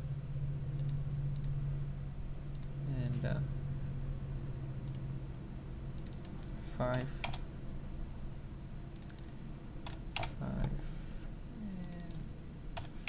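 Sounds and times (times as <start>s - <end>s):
keyboard and mouse clicks: 2.5s - 3.2s, 4.8s - 5.0s, 6.0s - 7.4s, 8.9s - 10.8s, 11.8s - 13.0s.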